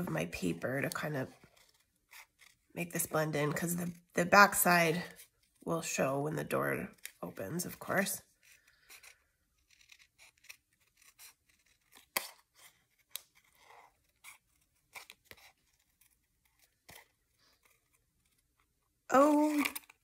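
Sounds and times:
scissors snipping paper: 8.4 - 18.5.

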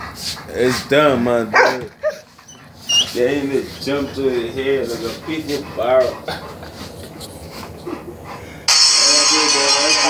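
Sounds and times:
dog whining: 1.4 - 8.3.

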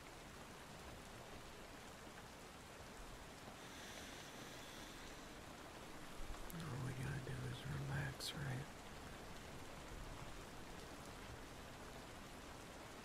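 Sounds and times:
soft hiss of rainfall: 0.0 - 13.0.

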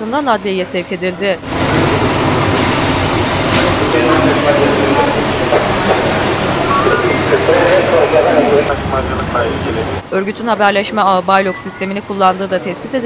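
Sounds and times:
people talking: 0.0 - 1.4, 3.6 - 13.0
bus diesel engine running: 0.0 - 13.0.

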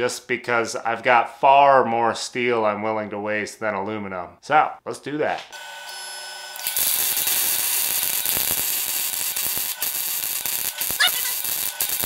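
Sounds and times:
welding arc crackling: 6.6 - 12.0.

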